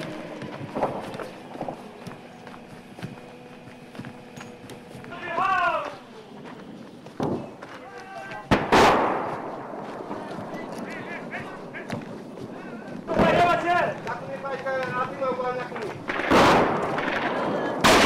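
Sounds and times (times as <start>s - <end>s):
person shouting: 7.8s - 8.5s
loud blast with echo: 8.5s - 9.8s, 16.1s - 18.0s
gunshots: 8.5s - 12.0s, 13.1s - 13.7s, 16.0s - 18.0s.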